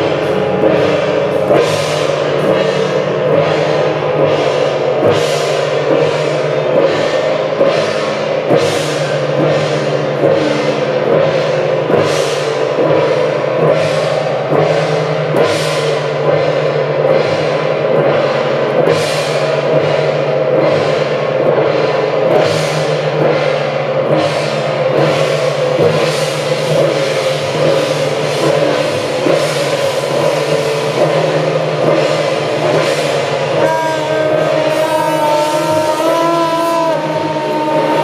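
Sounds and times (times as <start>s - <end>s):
drums gongs and cymbals crashing: 0.0s - 38.0s
ringing gong tone: 0.0s - 38.0s.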